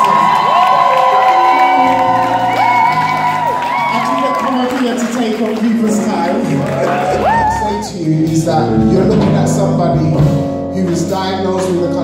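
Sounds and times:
long held high notes: 0:00.0 - 0:04.5
audience cheering and whooping: 0:00.0 - 0:08.1
soul band playing: 0:00.2 - 0:04.4, 0:05.8 - 0:12.0.

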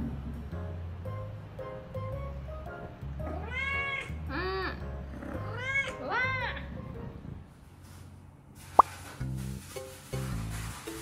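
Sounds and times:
cat meowing: 0:03.2 - 0:04.7, 0:05.4 - 0:06.6.

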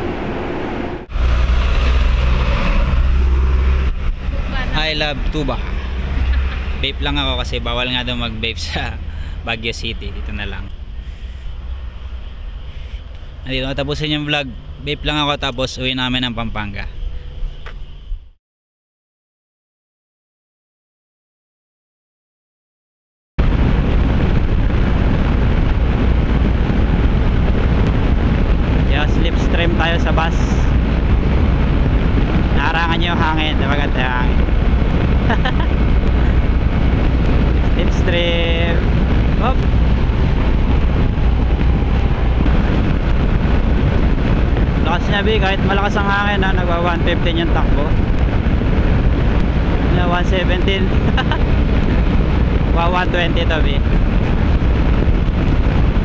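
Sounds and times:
wind rushing over microphone: 0:00.0 - 0:18.4, 0:23.4 - 0:56.0.

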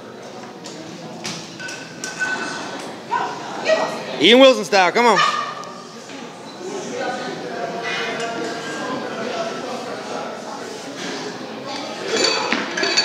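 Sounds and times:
barbell plates clinking: 0:12.1 - 0:13.0.

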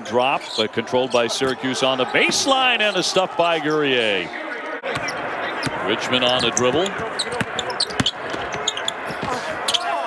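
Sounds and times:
shoe squeaks: 0:06.4 - 0:09.0.

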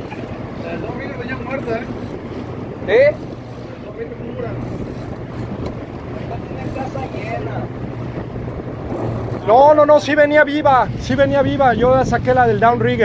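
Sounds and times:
boat engine humming: 0:00.0 - 0:13.0
water noise around hull: 0:00.0 - 0:13.0
wind buffeting microphone: 0:00.0 - 0:13.0.

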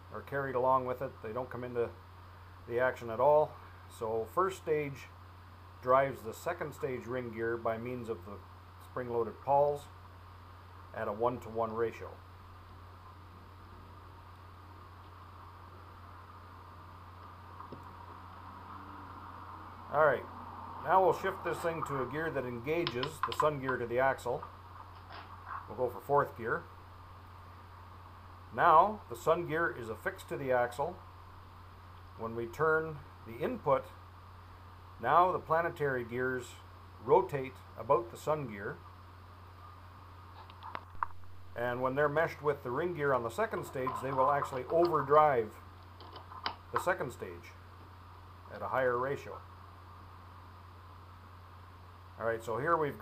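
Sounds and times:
low hum and hiss: 0:00.0 - 0:53.0.

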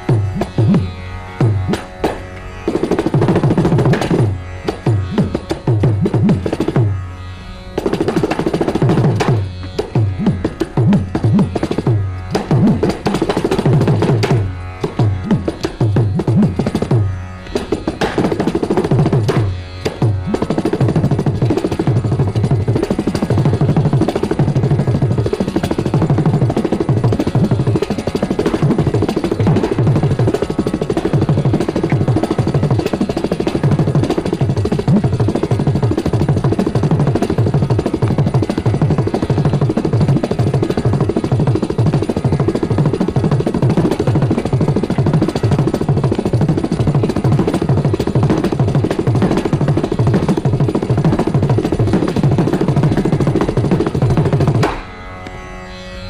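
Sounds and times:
hand drum fast low strokes: 0:00.0 - 0:07.0, 0:07.8 - 0:54.8.

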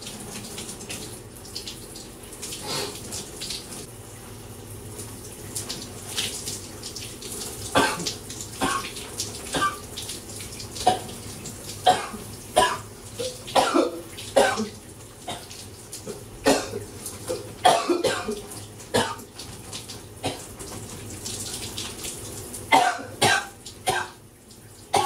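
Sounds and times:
running shower hiss: 0:00.0 - 0:03.9
man coughing: 0:13.6 - 0:14.7, 0:16.5 - 0:18.4, 0:22.7 - 0:24.2.

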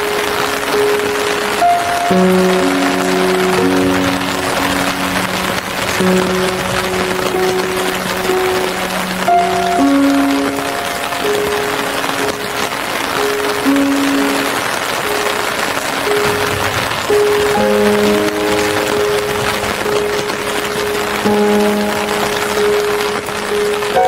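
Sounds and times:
rain hissing: 0:00.0 - 0:24.0
slow instrumental music: 0:00.0 - 0:24.0.

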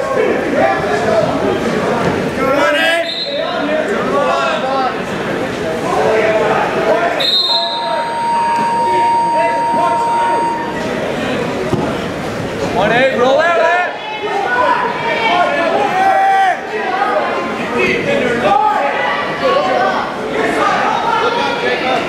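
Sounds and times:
people shouting in echoing hall: 0:05.8 - 0:10.8, 0:13.4 - 0:22.0
scoreboard buzzer long tone: 0:07.3 - 0:10.8.

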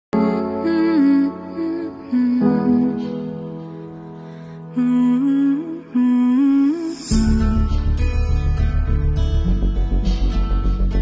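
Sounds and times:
guitar with bass line: 0:07.1 - 0:11.0.

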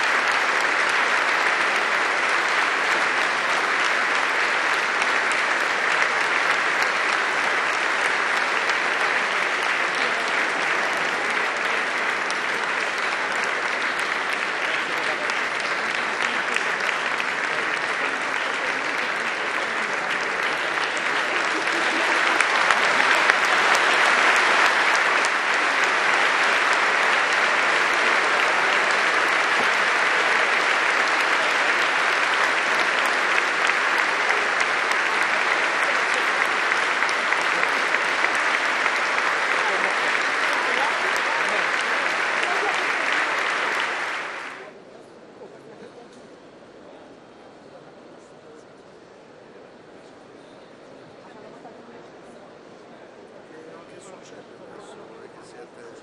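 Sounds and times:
large audience applauding: 0:00.0 - 0:44.8.

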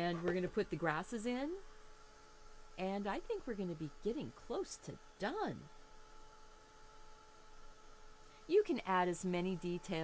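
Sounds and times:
handheld electric dryer humming: 0:00.0 - 0:10.0.

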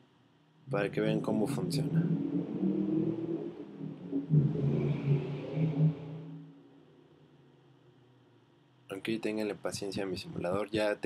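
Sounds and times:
low rumble with hum: 0:00.7 - 0:05.4, 0:09.4 - 0:10.7.

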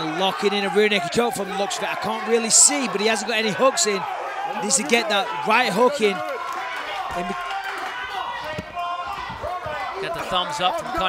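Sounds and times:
people shouting: 0:00.0 - 0:11.0.

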